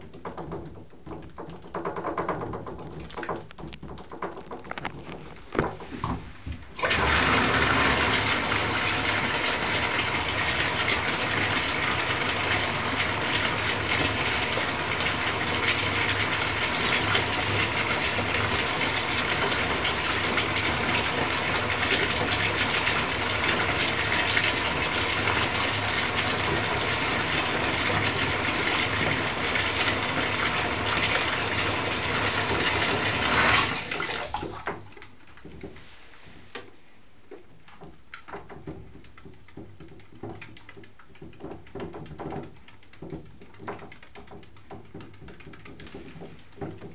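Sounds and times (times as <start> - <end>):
tap running into bathtub: 0.0 - 35.9, 36.5 - 46.9.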